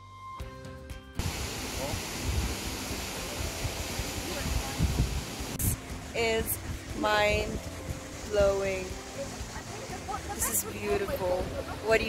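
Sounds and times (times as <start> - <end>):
distant waterfall roar: 1.2 - 12.0
wind buffeting microphone: 1.2 - 12.0.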